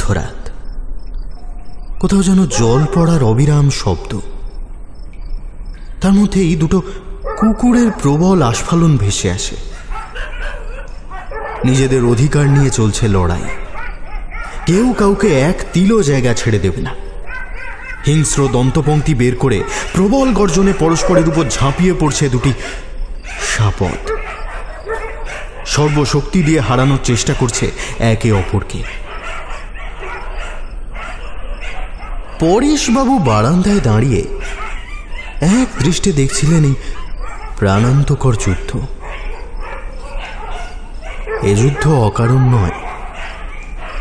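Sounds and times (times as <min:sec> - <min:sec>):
dogs fighting: 0:02.5 - 0:03.1, 0:07.2 - 0:08.2, 0:09.6 - 0:11.8, 0:12.4 - 0:15.9, 0:16.9 - 0:19.0, 0:19.6 - 0:27.6, 0:28.3 - 0:32.5, 0:34.3 - 0:44.0
dogs snarling and growling: 0:13.4 - 0:14.8, 0:24.1 - 0:26.7, 0:38.8 - 0:44.0.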